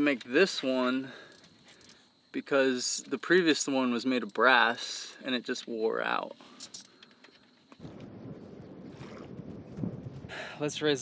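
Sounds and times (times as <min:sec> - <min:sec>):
wind rumbling on microphone: 0:07.8 - 0:11.0.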